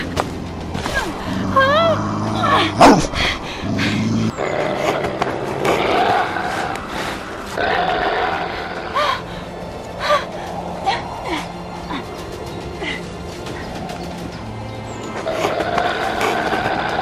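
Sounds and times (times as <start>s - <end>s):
low background music: 0.0s - 17.0s
werewolf growling and roaring: 1.1s - 9.3s.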